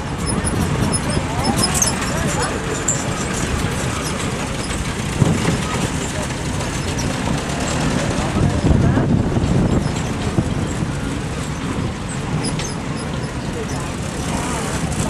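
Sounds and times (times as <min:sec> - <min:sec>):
jeep engines rumbling: 0:00.0 - 0:15.0.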